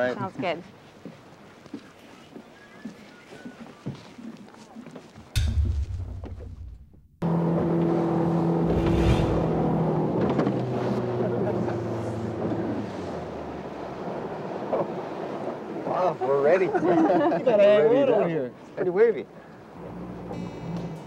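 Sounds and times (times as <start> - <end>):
motorboat engine running: 5.8 - 15.2.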